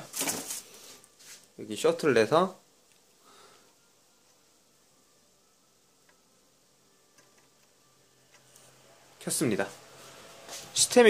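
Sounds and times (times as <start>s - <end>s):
faint low computer hum: 0.0s - 11.0s.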